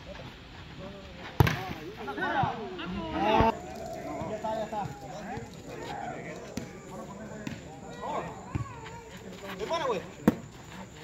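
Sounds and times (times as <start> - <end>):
distant chatter of people: 0.0 - 11.0.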